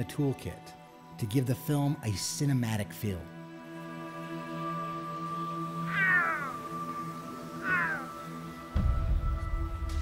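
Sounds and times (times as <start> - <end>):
background music: 0.0 - 10.0
puma calling: 5.6 - 8.7.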